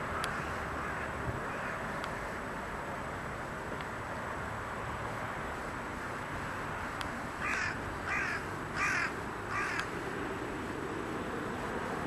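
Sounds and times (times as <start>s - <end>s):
steady background hiss: 0.0s - 12.0s
bird calling: 7.4s - 9.9s.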